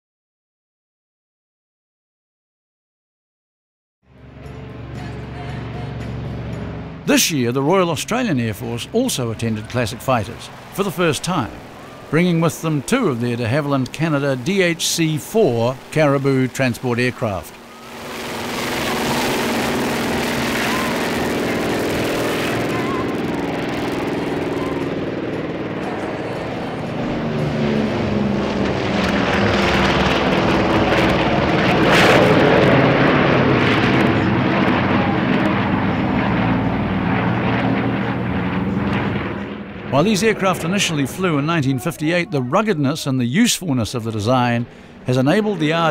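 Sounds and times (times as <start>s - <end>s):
propeller plane engines droning: 4.1s - 45.9s.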